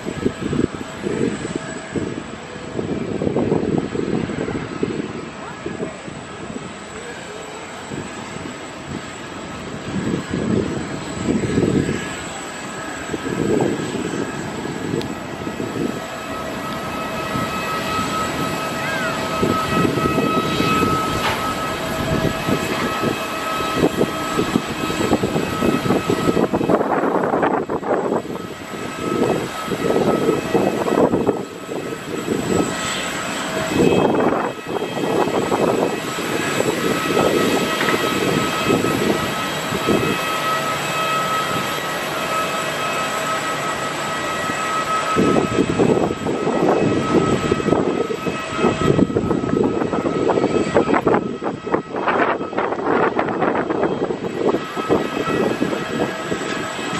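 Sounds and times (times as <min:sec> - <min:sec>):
jet engines whining: 0:00.0 - 0:56.9
wind buffeting microphone: 0:00.0 - 0:56.9.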